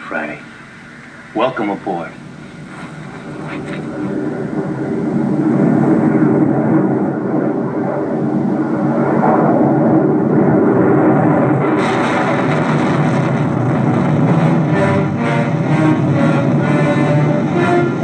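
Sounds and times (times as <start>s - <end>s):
rumbling spacecraft roar: 0.0s - 18.0s.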